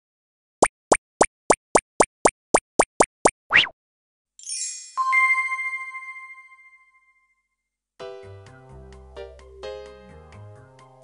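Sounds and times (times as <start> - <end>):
cartoon upward blip pops: 0.6 - 3.8.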